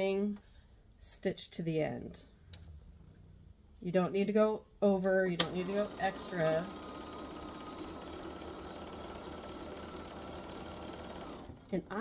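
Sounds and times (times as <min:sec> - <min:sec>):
electric sewing machine running: 0:05.4 - 0:11.8.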